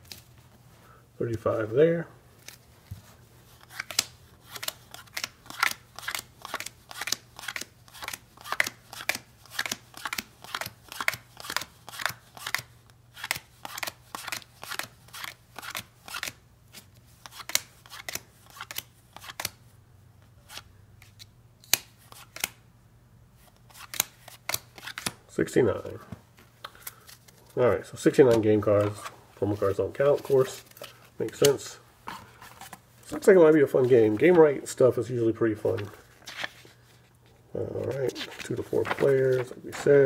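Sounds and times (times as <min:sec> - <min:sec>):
cards dealt onto a pile: 0:02.4 - 0:19.6, 0:20.4 - 0:22.6, 0:23.4 - 0:25.2, 0:26.4 - 0:34.4, 0:35.6 - 0:37.0, 0:37.8 - 0:40.0.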